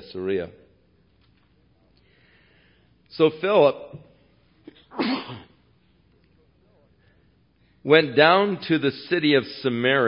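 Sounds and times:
man coughing: 4.6 - 5.6.

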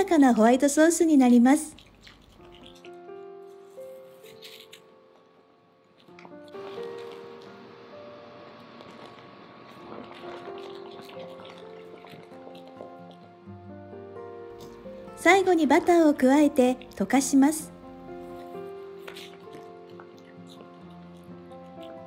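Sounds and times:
soft background music: 0.0 - 22.0
sauce squelching in a pan: 6.2 - 13.4.

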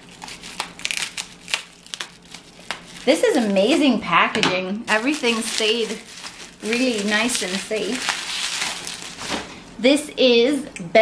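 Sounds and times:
bubble wrap crinkling: 0.0 - 4.0, 4.9 - 9.6.

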